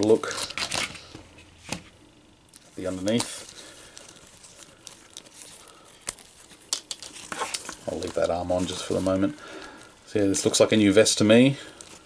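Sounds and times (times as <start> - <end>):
cloth coat rustling: 7.2 - 9.9.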